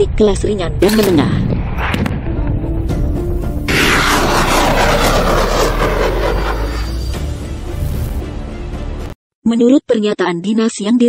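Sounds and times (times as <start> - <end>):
rocket launch rushing: 3.7 - 8.2.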